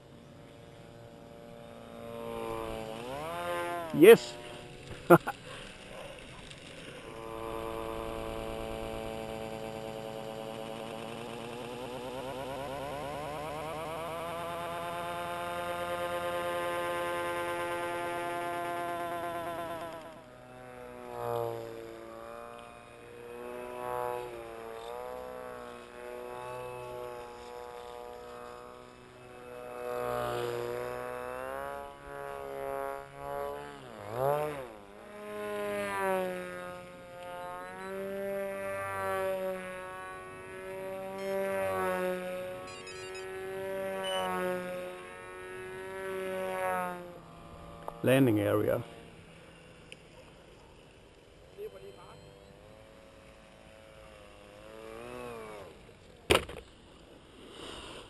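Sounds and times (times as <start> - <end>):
model plane motor buzzing: 0.0 - 58.0.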